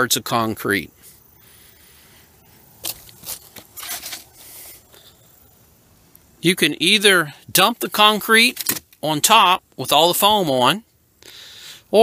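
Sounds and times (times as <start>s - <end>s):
low hiss: 0.0s - 12.0s
footsteps on gravel: 2.6s - 4.8s.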